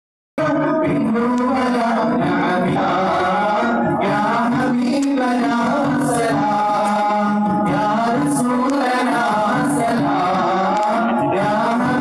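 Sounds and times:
men singing in unison: 0:00.4 - 0:12.0.

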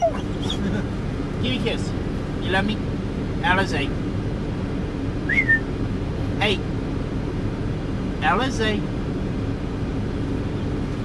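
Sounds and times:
truck engine idling: 0:00.0 - 0:11.0
person whistling: 0:05.3 - 0:05.6.

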